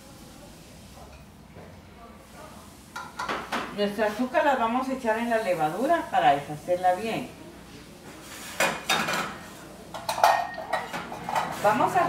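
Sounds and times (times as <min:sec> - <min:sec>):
steel bowl clinking on table: 0:10.0 - 0:11.6.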